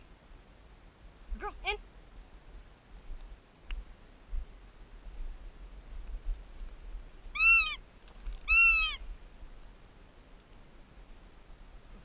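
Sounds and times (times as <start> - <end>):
goshawk wailing calls: 7.3 - 7.8, 8.4 - 9.0.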